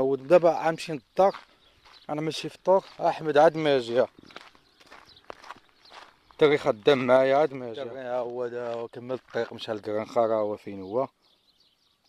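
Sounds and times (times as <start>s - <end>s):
footsteps on dirt road: 0.0s - 10.8s.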